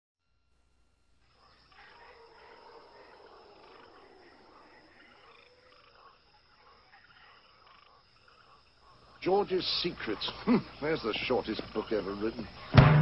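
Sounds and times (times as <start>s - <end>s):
animal calls: 1.2s - 12.8s
frogs croaking: 1.2s - 13.0s.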